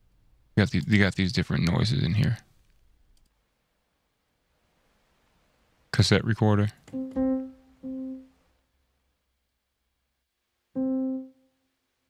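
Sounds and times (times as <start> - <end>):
felt piano notes: 6.9 - 8.3.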